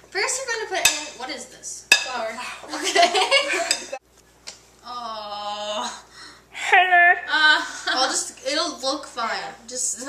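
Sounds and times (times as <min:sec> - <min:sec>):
kitchenware clinking: 0:00.8 - 0:01.2, 0:01.9 - 0:02.2, 0:02.8 - 0:04.0.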